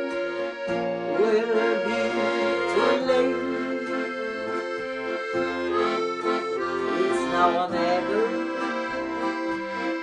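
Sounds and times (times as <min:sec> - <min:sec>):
accordion playing chords: 0:00.0 - 0:10.0
acoustic guitar strumming: 0:00.0 - 0:10.0.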